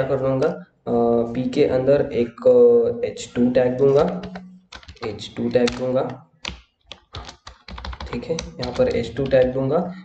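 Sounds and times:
typing on keyboard: 0:03.9 - 0:09.6.

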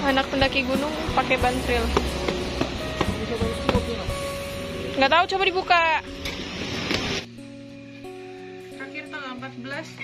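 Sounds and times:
background music with plucked notes: 0:00.0 - 0:10.0.

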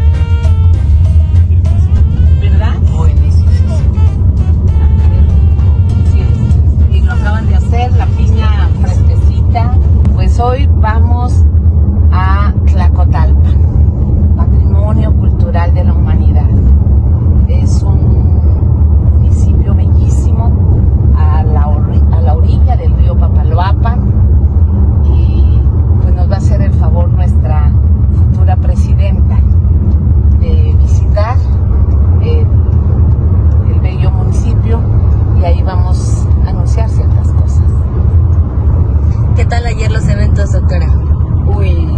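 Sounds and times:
background music: 0:00.0 - 0:10.0
car rumble from inside cabin: 0:00.0 - 0:41.9
woman talking: 0:02.4 - 0:04.0, 0:05.9 - 0:11.5, 0:12.1 - 0:16.7, 0:17.4 - 0:18.4, 0:19.1 - 0:24.1, 0:25.0 - 0:29.5, 0:30.4 - 0:31.6, 0:32.2 - 0:32.6, 0:33.5 - 0:37.9, 0:39.1 - 0:41.9.

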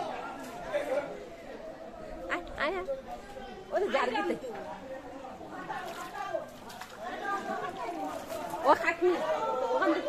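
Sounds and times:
distant people talking quietly: 0:00.0 - 0:10.0.

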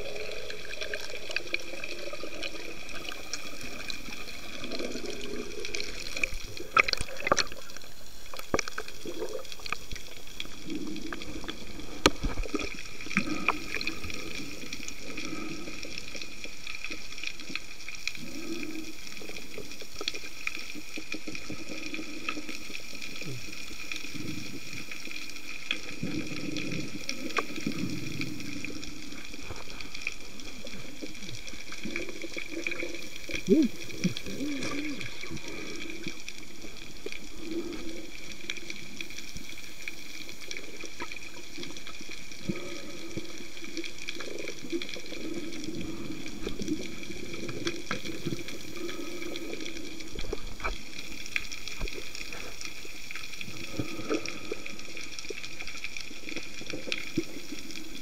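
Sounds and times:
underwater hiss: 0:00.0 - 0:58.0.

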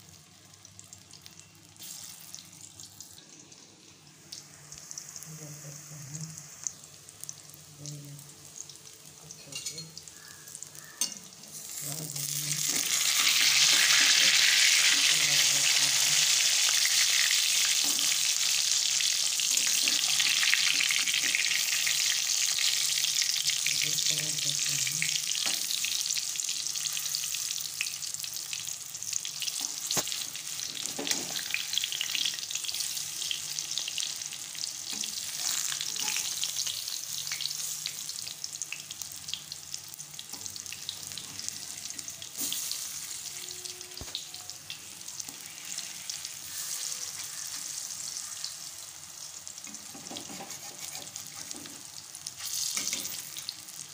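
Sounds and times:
food sizzling in hot oil: 0:00.0 - 0:53.9.

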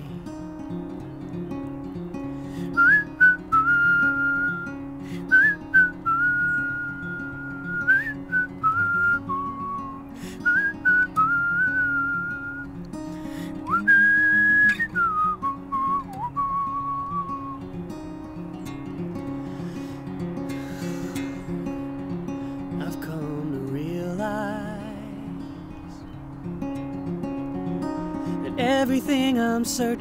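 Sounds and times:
acoustic guitar chords: 0:00.0 - 0:30.0
man whistling a melody: 0:02.6 - 0:12.9, 0:13.5 - 0:17.7.

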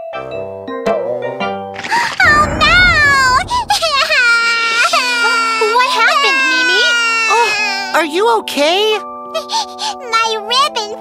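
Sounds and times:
low rushing noise: 0:02.2 - 0:04.4.

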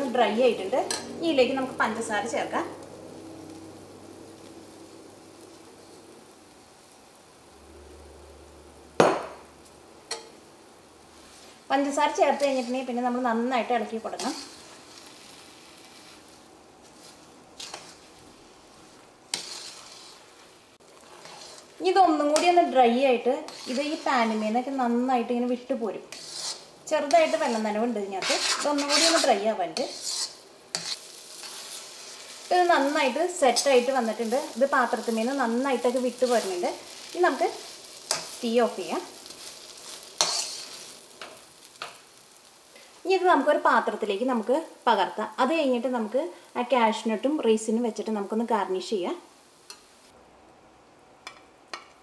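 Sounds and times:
metal spatula scraping pan: 0:00.0 - 0:02.0, 0:11.2 - 0:13.2, 0:13.9 - 0:24.7, 0:26.1 - 0:42.0
metal clinking on pan: 0:10.1 - 0:10.4.

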